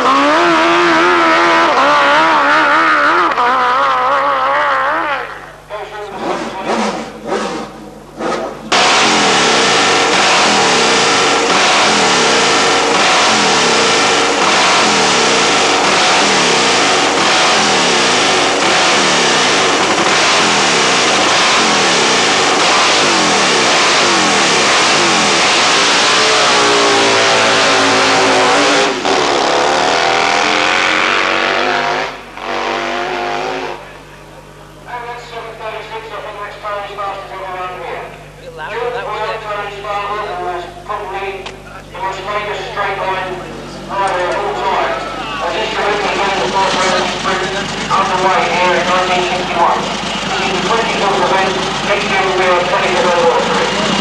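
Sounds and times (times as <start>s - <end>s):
motorcycle engine revving: 0.0s - 34.3s, 41.6s - 54.0s.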